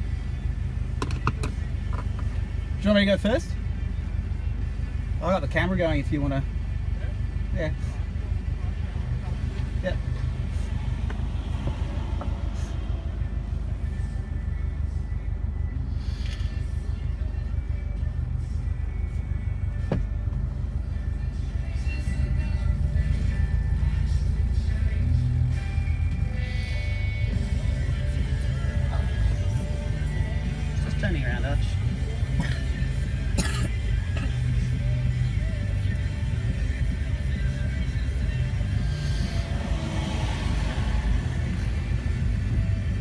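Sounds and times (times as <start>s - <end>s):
car engine idling: 0.0s - 43.0s
music playing: 0.0s - 43.0s.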